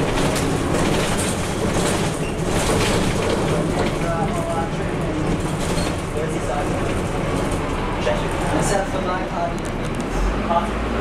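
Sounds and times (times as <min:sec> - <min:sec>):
rattles of bus body and fittings: 0:00.0 - 0:10.1
bus engine rumble and road noise: 0:00.0 - 0:11.0.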